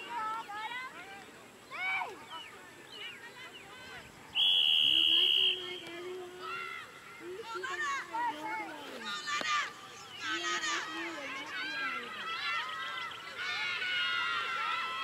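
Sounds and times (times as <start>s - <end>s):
referee's whistle blast: 4.4s - 5.8s.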